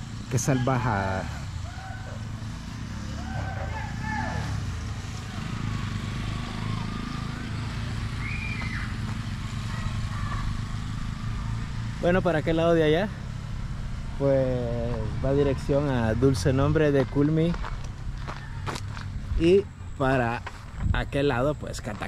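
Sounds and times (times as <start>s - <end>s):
motorcycle engines humming: 0.0s - 22.0s.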